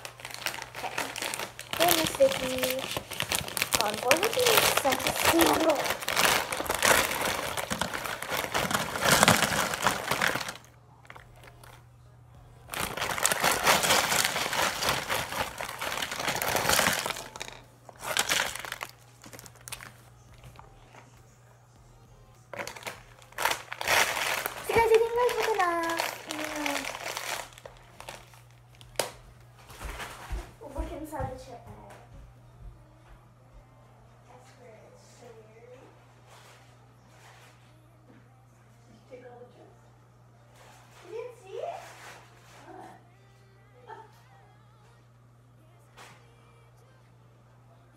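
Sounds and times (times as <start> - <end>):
chips falling onto paper plate: 0.0 - 11.8, 12.7 - 20.6, 22.5 - 29.2
plastic chip bag crinkling: 0.0 - 11.8, 12.6 - 20.8, 22.5 - 30.3.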